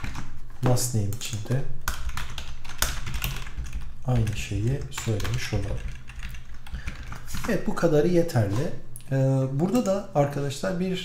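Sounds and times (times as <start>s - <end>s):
computer keyboard typing: 0.0s - 8.8s.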